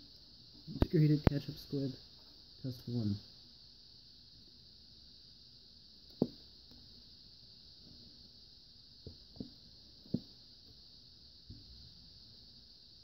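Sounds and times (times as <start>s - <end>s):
faint hiss: 0.0s - 13.0s.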